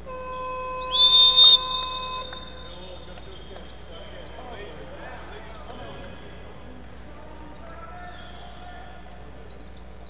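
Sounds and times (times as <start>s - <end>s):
referee whistle blast: 0.0s - 3.5s.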